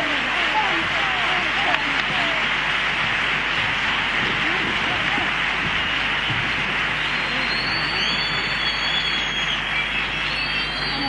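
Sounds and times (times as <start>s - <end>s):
audience applauding and cheering: 0.0s - 11.0s
high whistles: 5.8s - 11.0s.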